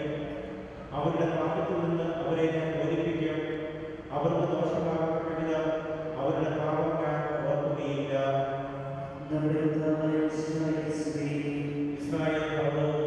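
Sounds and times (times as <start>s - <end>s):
man chanting a prayer: 0.9s - 13.0s.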